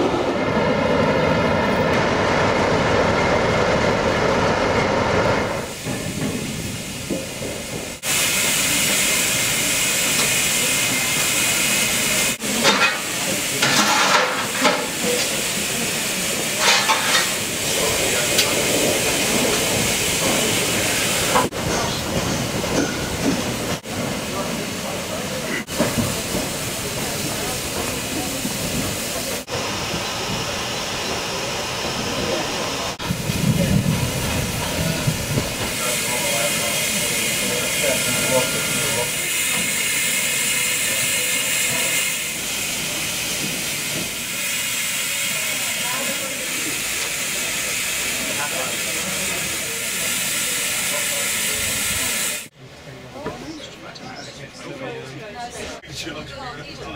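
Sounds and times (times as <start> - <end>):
steam hissing from locomotive: 5.4 - 52.6.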